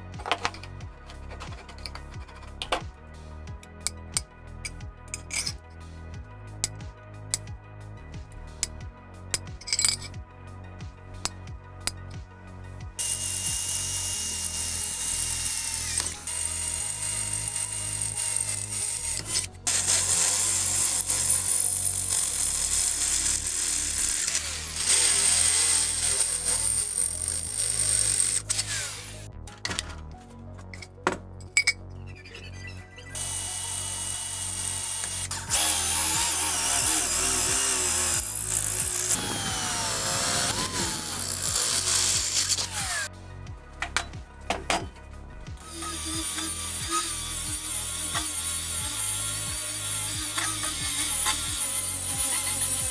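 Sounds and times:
background music: 0.0 - 52.9
electric drill boring through steel: 13.0 - 29.3, 33.1 - 43.1, 45.6 - 52.9.

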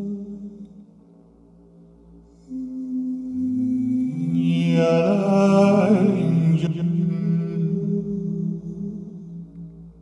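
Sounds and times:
layered male chant singing: 0.0 - 0.8, 2.5 - 9.8.

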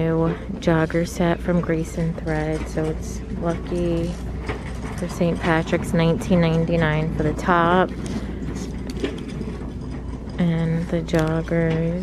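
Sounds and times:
clothes hangers clicking on rack: 0.0 - 12.0
store background hum: 0.0 - 12.0.

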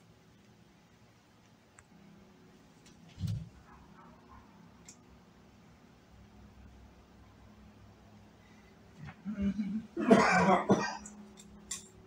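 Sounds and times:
man clearing his throat: 9.2 - 11.1
man coughing hard: 9.3 - 11.1.

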